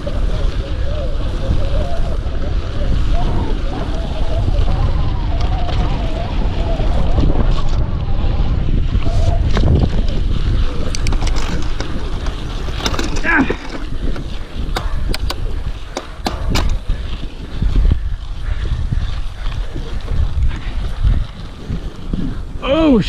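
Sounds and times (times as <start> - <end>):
bike clicks and rattles: 0.0 - 23.0
bike rolling over dirt: 0.0 - 23.0
wind buffeting microphone: 0.0 - 23.0
person exclaiming: 13.2 - 13.6, 22.6 - 23.0
person's voice: 22.6 - 23.0.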